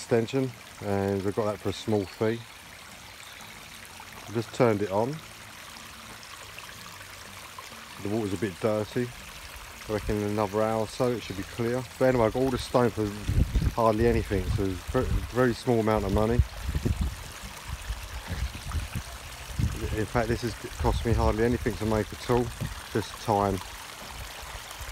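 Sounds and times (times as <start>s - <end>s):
water trickling over rocks: 0.0s - 24.9s.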